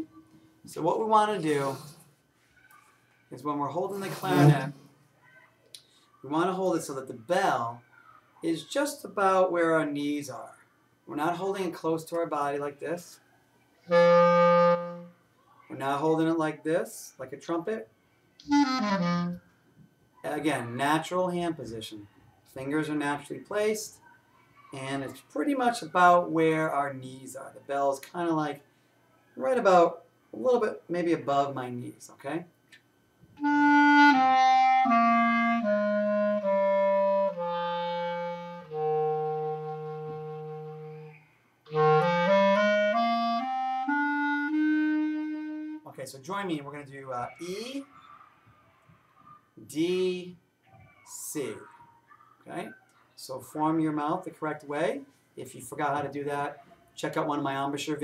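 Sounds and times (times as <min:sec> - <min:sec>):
clarinet note sliding down: 0:04.1 - 0:04.8, 0:13.9 - 0:15.1, 0:18.5 - 0:19.4, 0:33.4 - 0:45.8.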